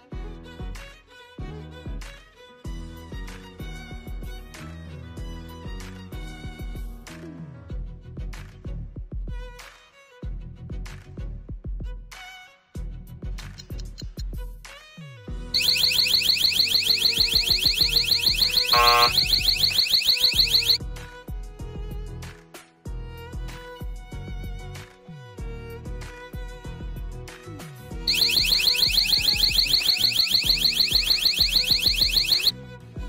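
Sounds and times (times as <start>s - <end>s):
alarm siren whooping: 15.6s - 20.8s, 28.1s - 32.5s
background music with steady beat: 15.6s - 32.5s.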